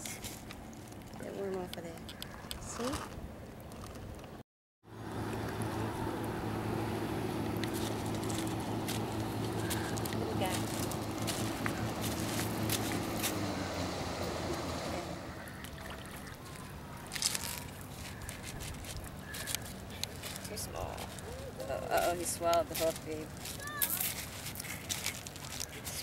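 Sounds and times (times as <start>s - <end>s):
engine hum: 0.0s - 26.0s.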